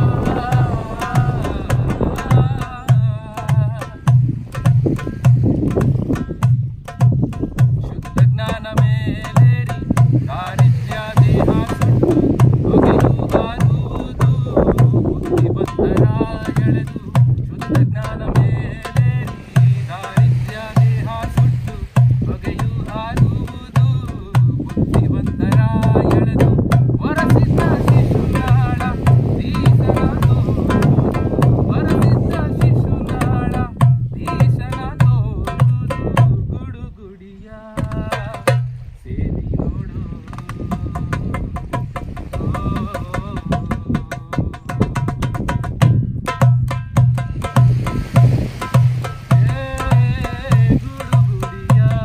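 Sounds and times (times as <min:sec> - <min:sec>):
man singing: 0:00.0 - 0:05.3, 0:07.4 - 0:45.1, 0:47.2 - 0:52.0
darbuka drumming: 0:00.0 - 0:36.6, 0:37.8 - 0:38.9, 0:40.3 - 0:52.0.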